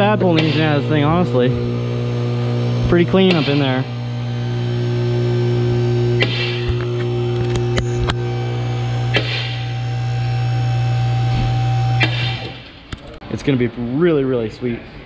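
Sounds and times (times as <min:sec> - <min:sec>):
loud electrical hum: 0:00.0 - 0:15.0.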